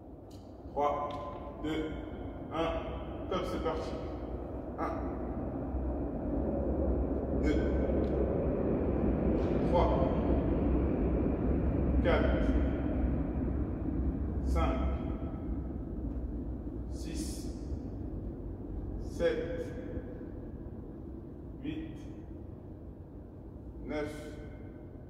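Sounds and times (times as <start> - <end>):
low room hum: 0.0 - 25.0.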